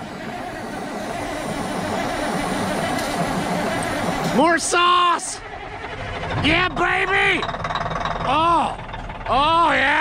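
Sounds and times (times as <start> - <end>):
diesel engine cranking on starter: 0.0 - 10.0.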